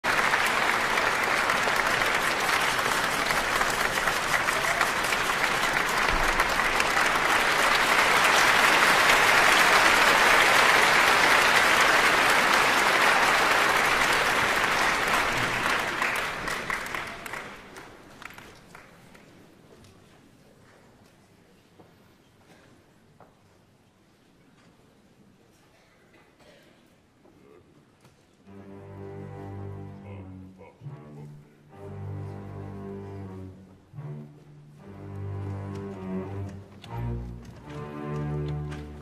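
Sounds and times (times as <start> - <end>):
audience applauding: 0.0 - 19.3.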